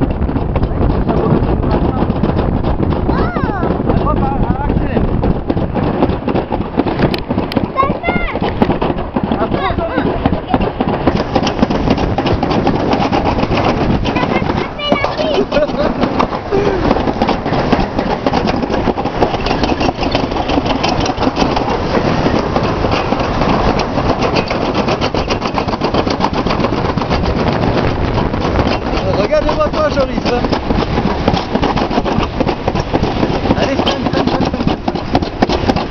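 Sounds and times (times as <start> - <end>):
sled rattling on metal track: 0.0 - 35.9.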